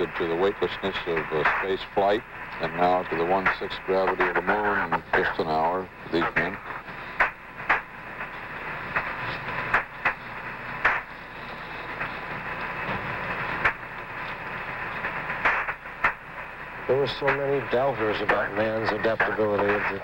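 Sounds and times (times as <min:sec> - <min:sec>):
radio clicks and crackles: 0:00.0 - 0:20.0
radio static hiss: 0:00.0 - 0:20.0.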